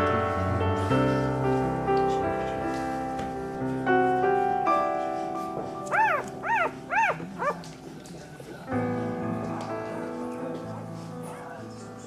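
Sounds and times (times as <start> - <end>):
soft piano music: 0.0 - 12.0
puppy squealing: 5.9 - 7.6.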